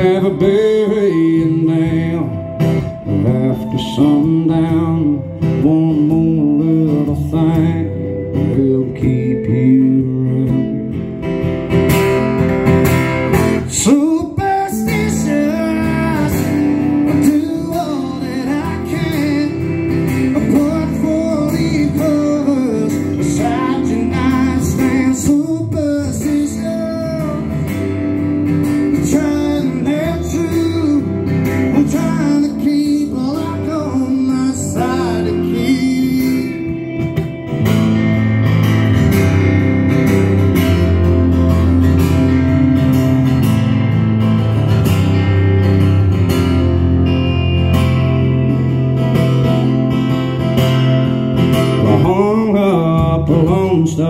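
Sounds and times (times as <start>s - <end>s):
man singing: 0.0s - 11.2s, 13.6s - 37.5s, 51.7s - 54.0s
strummed acoustic guitars: 0.0s - 54.0s.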